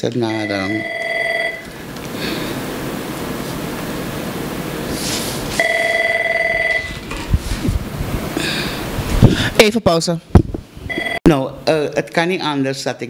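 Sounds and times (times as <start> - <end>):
telephone ringing electronic warble: 0.3 - 1.7, 5.6 - 7.0, 10.9 - 11.2.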